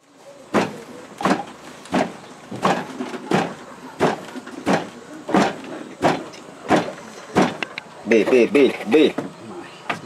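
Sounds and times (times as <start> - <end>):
pestle pounding in wooden mortar: 0.6 - 7.6.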